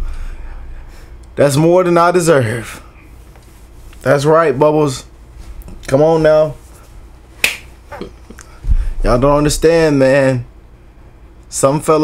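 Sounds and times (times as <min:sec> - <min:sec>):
high five slap: 0:07.4 - 0:07.7.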